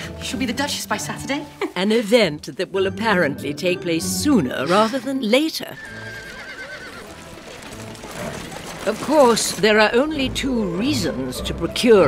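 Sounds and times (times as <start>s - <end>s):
horse whinnying: 4.5s - 9.1s
hooves clip-clopping: 5.8s - 10.2s.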